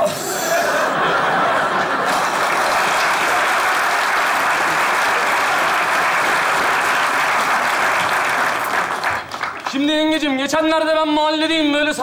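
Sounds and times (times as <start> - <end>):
audience applauding: 0.9 - 10.3.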